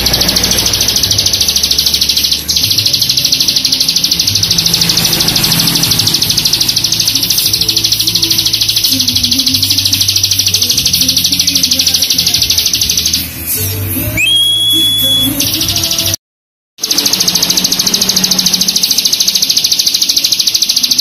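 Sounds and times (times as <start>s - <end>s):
bird buzzing trill: 0.0s - 13.3s
bird whistled note: 14.2s - 15.5s.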